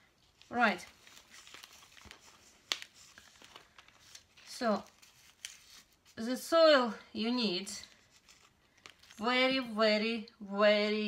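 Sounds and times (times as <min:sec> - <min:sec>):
plastic pots crinkling: 0:00.3 - 0:06.0, 0:07.9 - 0:09.4.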